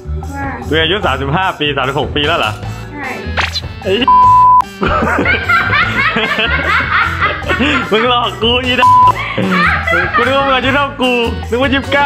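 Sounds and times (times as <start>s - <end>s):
background music: 0.0s - 12.0s
censor bleep: 4.1s - 4.7s, 8.8s - 9.2s
woman laughing: 4.8s - 8.1s, 9.1s - 10.3s.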